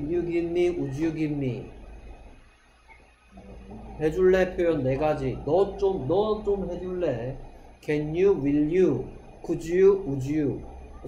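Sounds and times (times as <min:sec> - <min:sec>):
man speaking: 0:00.0 - 0:01.8, 0:03.6 - 0:10.6
low steady hum: 0:00.0 - 0:11.0
man humming: 0:03.4 - 0:05.6.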